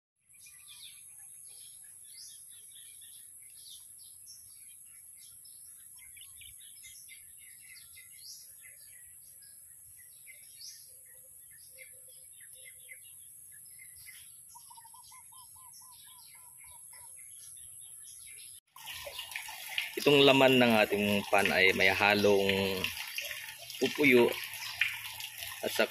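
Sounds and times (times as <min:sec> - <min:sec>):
small birds chirping: 0:00.2 - 0:25.9
splashing water: 0:18.7 - 0:25.9.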